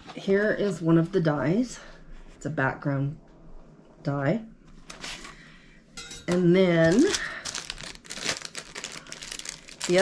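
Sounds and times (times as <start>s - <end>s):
packaging rustling and crackling: 6.7s - 10.0s.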